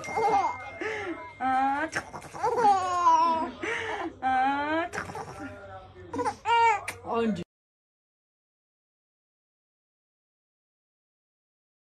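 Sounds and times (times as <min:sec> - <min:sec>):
baby squealing: 0:01.9 - 0:03.3.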